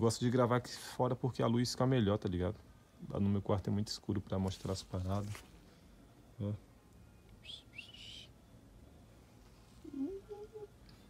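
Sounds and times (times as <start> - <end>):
faint high bird chirps: 7.1 - 9.0.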